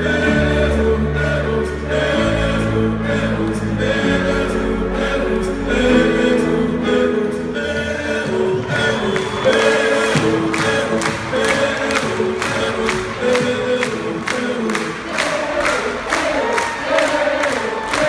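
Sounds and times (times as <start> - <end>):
crowd singing and cheering: 0.0 - 18.0.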